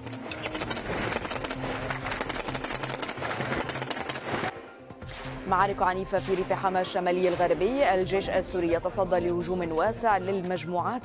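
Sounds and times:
rapid automatic gunfire: 0.2 - 4.7.

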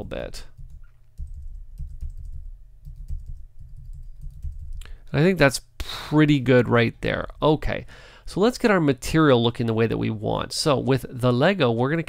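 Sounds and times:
computer keyboard keys tapping: 0.6 - 4.9.

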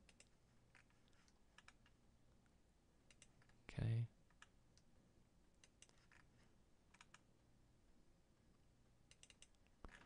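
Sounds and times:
faint computer clicks: 9.1 - 10.0.

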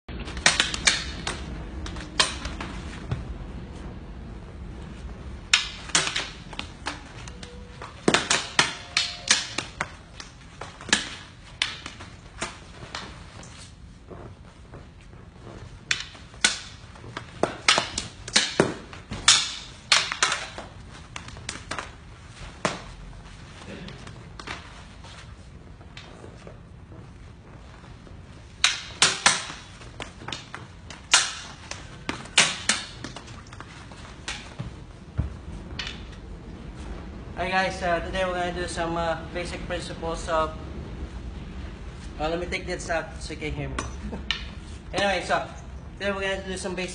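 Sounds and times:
sticks clacking together: 0.4 - 2.6, 5.5 - 13.6, 15.9 - 16.8, 17.4 - 21.9, 28.6 - 34.6.

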